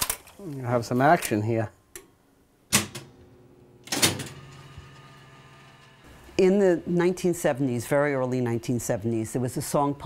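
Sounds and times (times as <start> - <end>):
jukebox mechanism clunking: 3.8 - 5.2.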